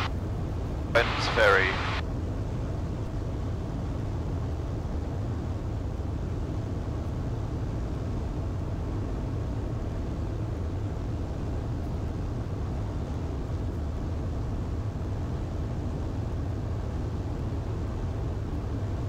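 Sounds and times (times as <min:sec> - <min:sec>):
airplane engine and propeller droning: 0:00.0 - 0:19.0.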